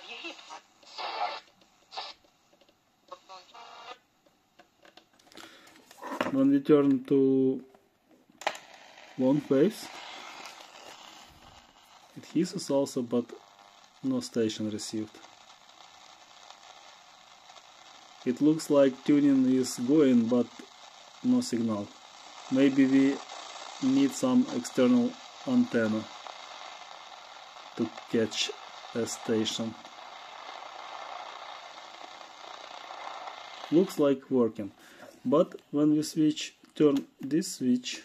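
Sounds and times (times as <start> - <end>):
radio static hiss: 0.0 - 4.1, 8.5 - 36.5.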